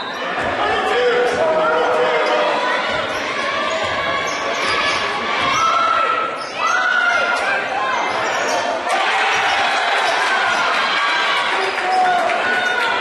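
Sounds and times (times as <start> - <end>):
sneakers squeaking: 0.0 - 10.8
voices shouting in a gym: 0.0 - 13.0.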